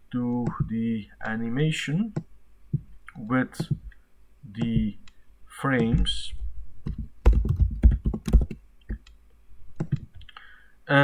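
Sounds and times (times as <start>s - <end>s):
computer keyboard typing: 6.8s - 9.1s, 9.8s - 10.2s.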